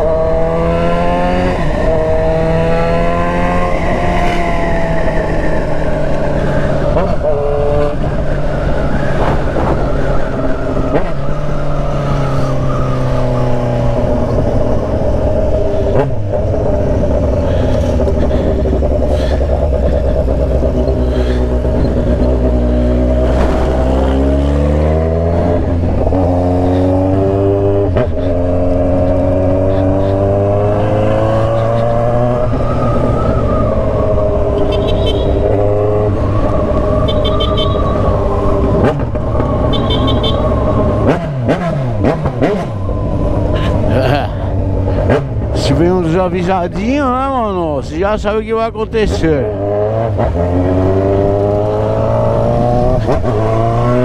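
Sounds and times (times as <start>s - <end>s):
motorcycle engine: 0.0s - 54.0s.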